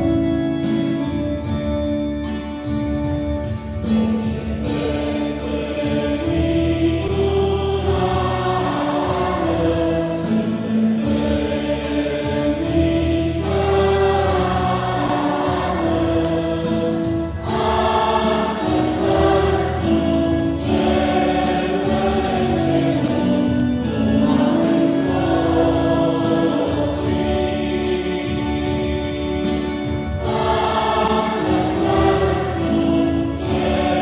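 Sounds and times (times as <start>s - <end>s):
choir singing a hymn: 0.0s - 34.0s.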